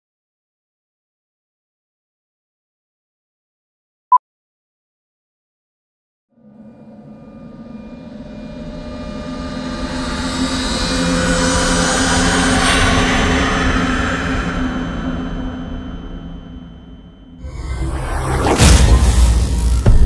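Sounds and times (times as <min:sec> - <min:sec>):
jet aircraft flyby roar: 0:17.4 - 0:20.0.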